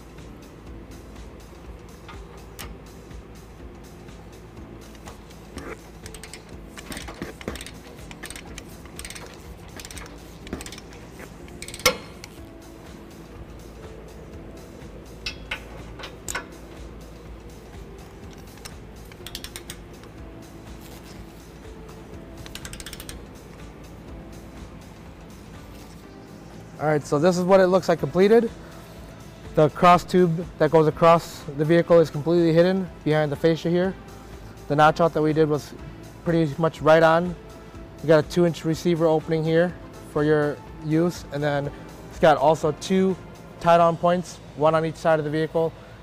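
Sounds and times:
background music: 0.0s - 46.0s
torque wrench clicking: 2.0s - 2.8s, 5.0s - 12.5s, 15.2s - 16.6s, 18.2s - 20.1s, 22.4s - 23.2s
torque wrench ratcheting: 5.6s - 12.4s, 18.3s - 19.9s, 22.4s - 23.2s.

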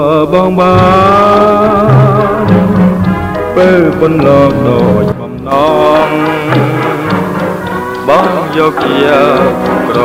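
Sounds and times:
man singing: 0.0s - 10.0s
band accompaniment: 0.6s - 10.0s.

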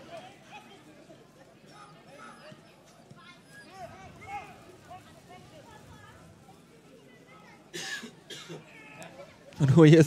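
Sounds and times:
low crowd noise: 0.0s - 10.0s.

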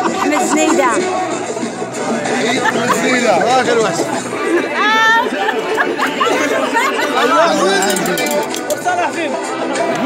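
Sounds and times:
people talking loudly: 0.0s - 10.0s.

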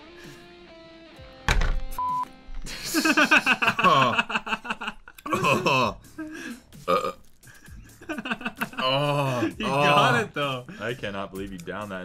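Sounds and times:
man burping: 6.8s - 7.3s
man's voice: 8.8s - 12.0s.

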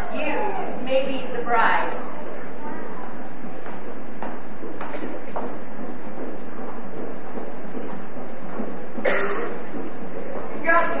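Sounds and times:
short cough: 9.0s - 9.6s.

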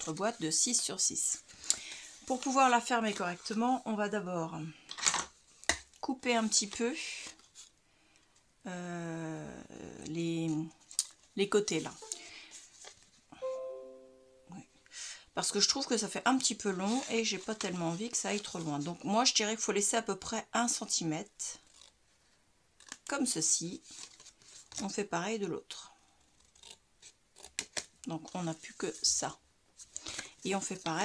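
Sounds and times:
soft plucked background music: 12.0s - 12.4s, 13.4s - 14.8s.

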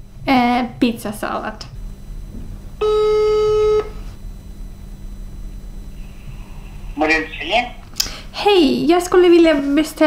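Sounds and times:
telephone ringback tone: 2.8s - 4.1s.

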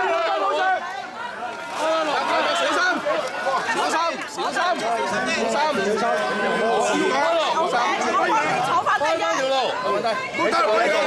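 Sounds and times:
crowd of voices talking: 0.0s - 11.0s.

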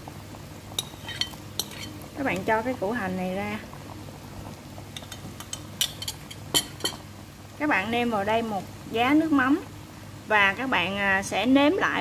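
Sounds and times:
broth simmering: 0.0s - 12.0s
low steady hum: 0.0s - 12.0s
metal ladle clinking on pot: 5.0s - 7.0s.

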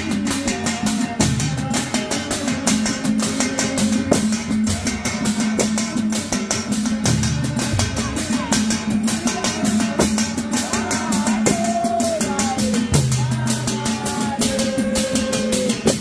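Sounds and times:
frame drums beaten in rhythm: 0.0s - 16.0s.

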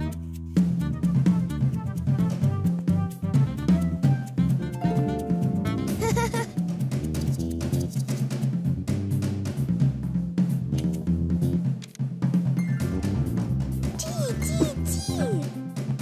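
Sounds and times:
bass line: 0.0s - 7.9s
drum kit playing busy beat: 0.0s - 16.0s.

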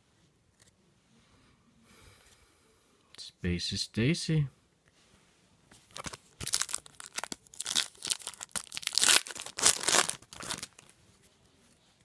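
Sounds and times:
trading cards rustling: 5.9s - 10.9s.

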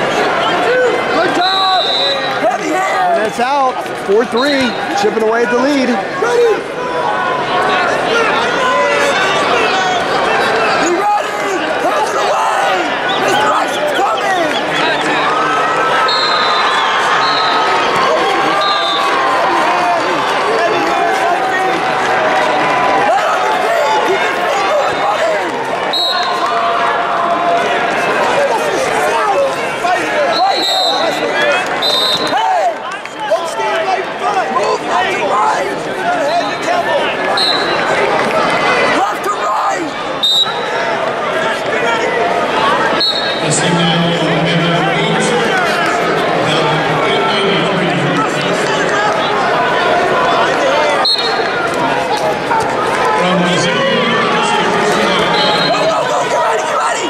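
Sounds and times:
crowd shouting in echoing hall: 0.0s - 57.0s
shrill whistle blasts: 1.3s - 2.4s, 16.0s - 17.7s, 18.6s - 19.2s, 25.9s - 26.4s, 30.3s - 31.2s, 31.8s - 32.3s, 37.4s - 37.8s, 40.2s - 40.7s, 43.0s - 43.4s, 51.0s - 51.4s, 55.3s - 55.9s.

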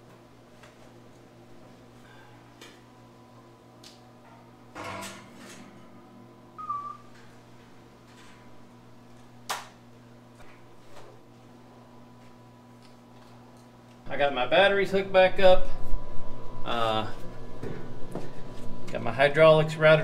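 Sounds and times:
low electrical hum: 0.0s - 20.0s.

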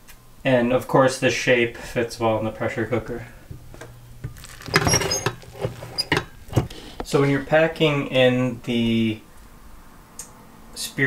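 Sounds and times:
spatula scraping a pot: 4.2s - 7.0s.

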